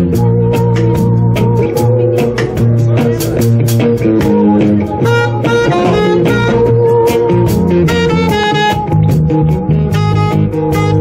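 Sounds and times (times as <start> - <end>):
bass guitar: 0.0 - 11.0
electric guitar: 0.0 - 11.0
saxophone: 0.0 - 11.0.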